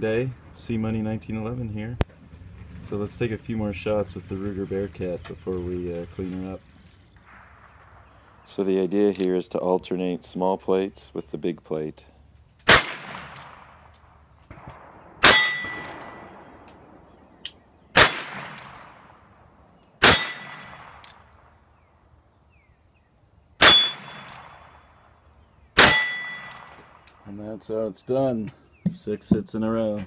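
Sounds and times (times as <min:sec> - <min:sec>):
revolver shots: 0:12.7 - 0:21.6
steel target plate ringing: 0:15.2 - 0:16.5, 0:20.0 - 0:21.0, 0:23.6 - 0:24.4, 0:25.8 - 0:26.8.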